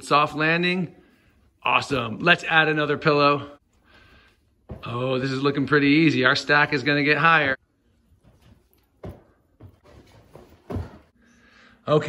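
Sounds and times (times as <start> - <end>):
feet thudding on rug: 8.2 - 11.2.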